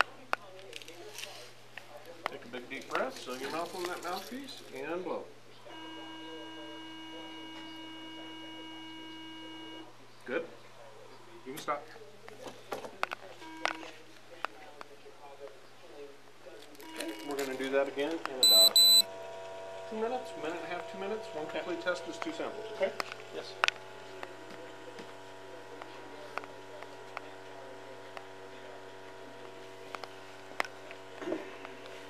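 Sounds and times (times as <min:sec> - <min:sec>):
brief electronic tone: 0:18.4 - 0:19.1
high-pitched beeps: 0:18.4 - 0:19.1.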